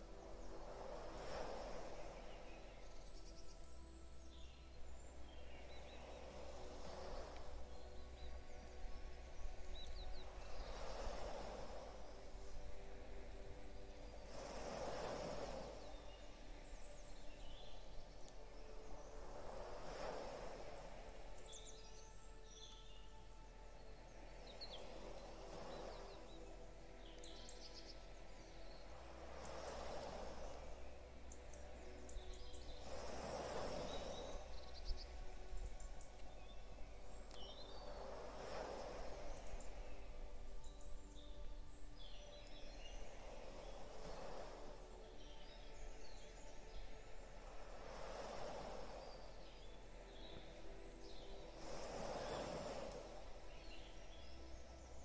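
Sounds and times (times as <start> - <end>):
sea waves washing in: 0.0 - 55.0
soft musical drone: 0.0 - 55.0
small birds chirping: 13.9 - 19.2, 21.4 - 47.2.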